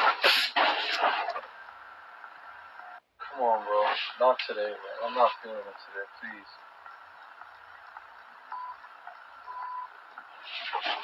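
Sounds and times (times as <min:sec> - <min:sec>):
short electronic beeps: 0:08.5 - 0:10.0.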